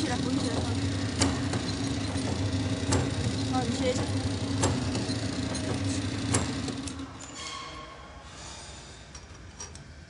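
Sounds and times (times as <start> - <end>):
packaging machine motor hum: 0.0 - 7.2.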